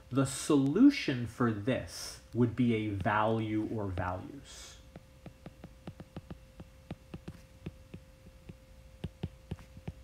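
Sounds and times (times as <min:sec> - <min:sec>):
low electrical hum: 0:00.0 - 0:10.0
stylus tapping on glass screen: 0:04.9 - 0:10.0.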